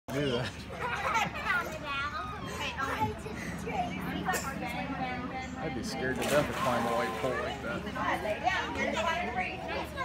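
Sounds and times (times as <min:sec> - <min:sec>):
children talking and calling out: 0:00.6 - 0:05.7, 0:06.8 - 0:10.0.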